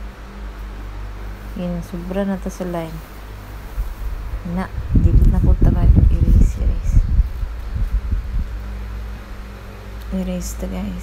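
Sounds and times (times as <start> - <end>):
low background hum: 0.0 - 11.0
soft low thumps: 3.7 - 8.7.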